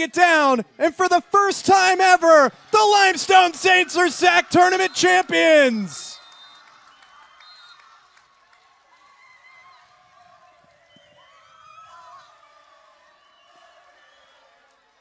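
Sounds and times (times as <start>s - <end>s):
distant crowd cheering and screaming: 0.0s - 8.2s, 8.8s - 15.0s.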